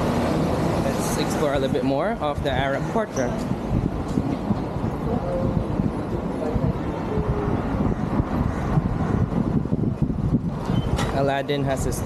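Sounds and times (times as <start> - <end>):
vehicles passing: 0.0 - 12.0.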